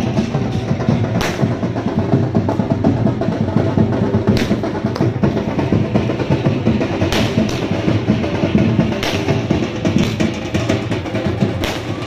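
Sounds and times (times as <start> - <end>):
drums beating fast rhythm: 0.0 - 12.0.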